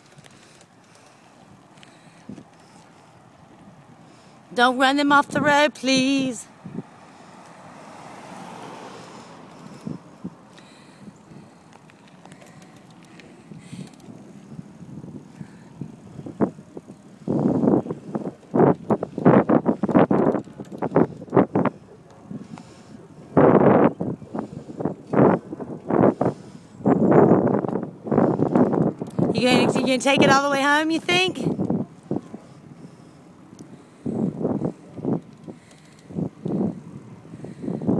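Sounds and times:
wind buffeting microphone: 0.0 - 37.9.

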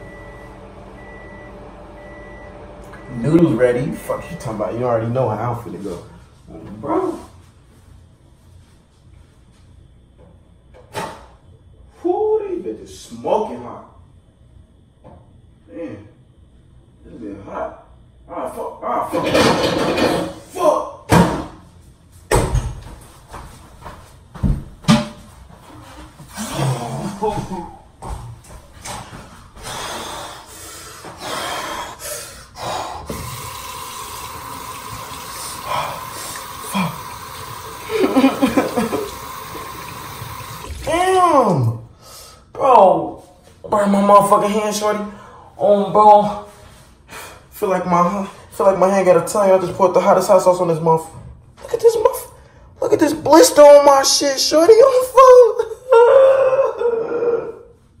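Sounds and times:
steady hiss: 29.8 - 40.9
man wailing in pain: 55.6 - 57.7.

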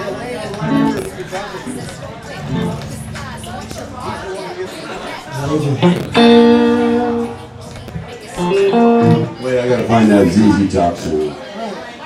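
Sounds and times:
voices: 0.0 - 12.0
electric guitar single notes: 0.6 - 4.5, 5.4 - 9.5.

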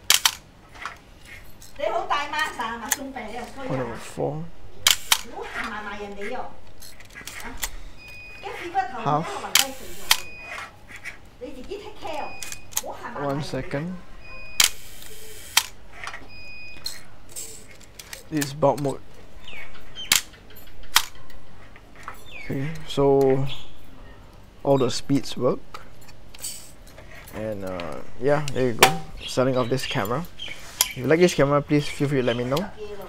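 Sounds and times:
camera shutter clicks: 0.0 - 0.4, 4.8 - 5.3, 9.6 - 10.3, 14.6 - 15.8.

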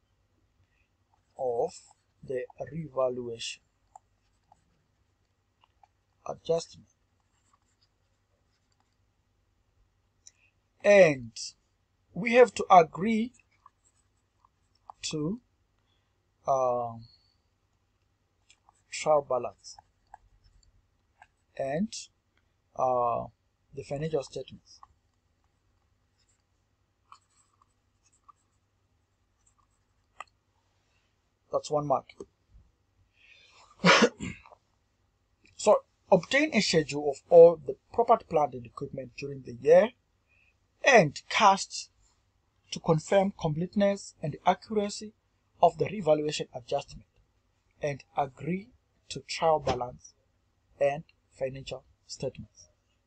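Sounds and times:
man speaking: 1.4 - 3.6, 6.3 - 6.8, 10.8 - 11.5, 12.2 - 13.3, 15.0 - 15.4, 16.5 - 17.0, 18.9 - 19.8, 21.6 - 22.1, 22.8 - 24.8, 31.5 - 32.2, 35.6 - 39.9, 40.8 - 41.8, 42.7 - 47.0, 47.8 - 50.1, 50.8 - 52.6
stylus scratching on screen: 26.2 - 28.7, 29.3 - 30.3
faint breath: 33.1 - 33.7
man's throaty vocal burst: 33.8 - 34.4.

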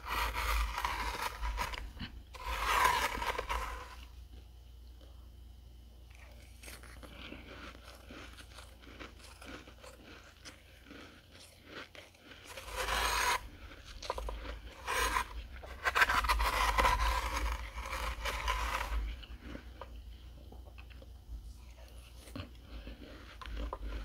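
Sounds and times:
metal spoon scraping frost: 0.0 - 4.1, 11.7 - 19.7
chewing crunchy frost: 0.0 - 5.1, 6.0 - 24.0.

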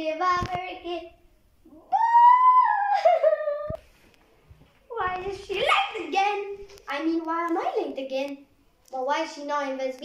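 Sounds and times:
girl vocalizing: 1.7 - 3.8.

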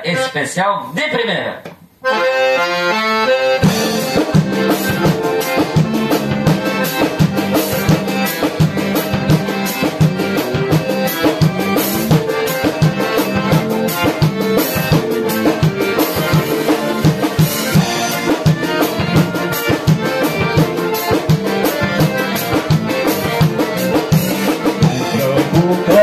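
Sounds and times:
band playing dance music: 0.0 - 26.0
drum kit beat: 1.7 - 26.0
piano accordion melody: 2.0 - 26.0.

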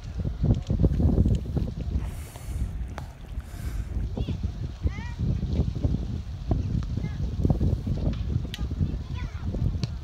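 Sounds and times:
wind buffeting microphone: 0.0 - 10.0
short hisses: 3.4 - 4.0.

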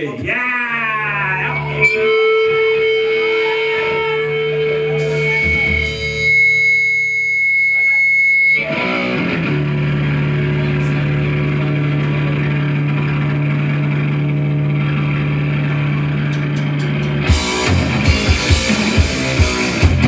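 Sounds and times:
electric guitar feedback: 0.0 - 20.0
amplifier drone: 0.8 - 20.0.

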